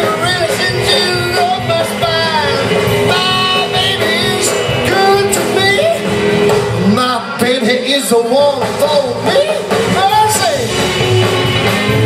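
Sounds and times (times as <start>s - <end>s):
person singing lead vocal: 0.0s - 10.8s
drums: 0.0s - 12.0s
electric guitar: 0.0s - 12.0s
upright bass: 0.0s - 12.0s.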